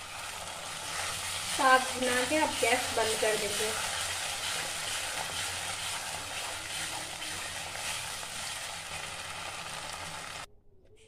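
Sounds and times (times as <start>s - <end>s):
greens sizzling in a pan: 0.0s - 10.5s
wooden spatula stirring: 0.0s - 10.5s.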